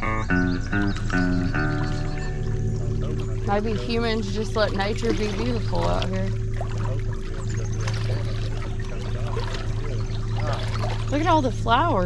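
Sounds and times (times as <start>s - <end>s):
low electric hum: 0.0s - 12.0s
water trickling and pouring: 0.9s - 12.0s.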